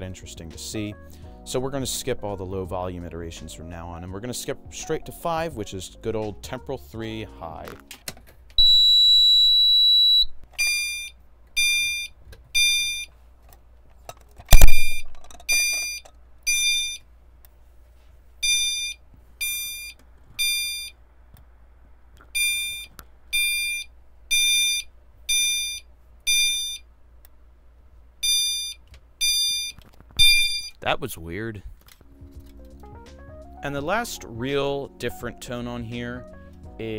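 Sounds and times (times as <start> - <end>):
steady high beep: 8.6 - 13.1, 14.5 - 17.0, 22.4 - 26.8, 28.2 - 30.8
loud sharp click: 14.5 - 15.1
high electronic chimes: 14.5 - 16.0, 29.6 - 30.8.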